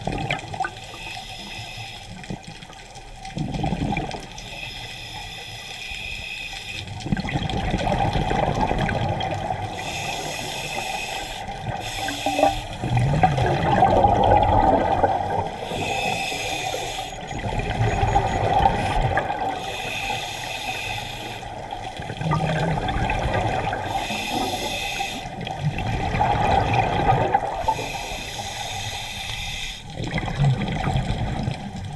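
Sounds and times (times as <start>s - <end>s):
bubbling exhale underwater: 0.0s - 0.7s, 3.4s - 4.3s, 7.0s - 9.8s, 11.6s - 19.8s, 22.0s - 24.7s, 25.3s - 27.9s, 30.0s - 31.9s
regulator air hiss on inhale: 0.8s - 2.2s, 4.4s - 6.9s, 9.7s - 12.9s, 15.6s - 17.3s, 19.6s - 22.0s, 23.8s - 25.4s, 27.6s - 30.0s.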